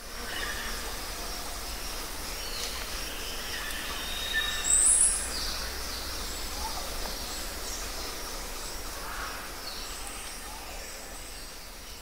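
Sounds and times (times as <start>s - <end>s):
forest background noise: 0.0s - 12.0s.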